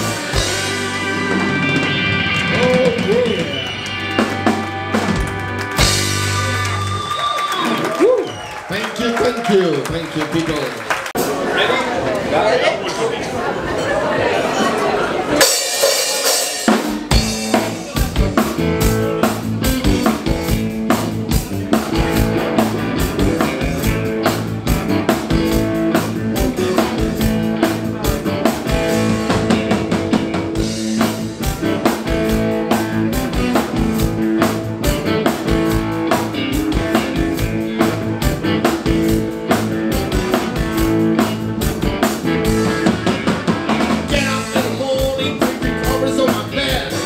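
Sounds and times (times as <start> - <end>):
blues-rock band playing: 0.0 - 8.6, 14.7 - 47.0.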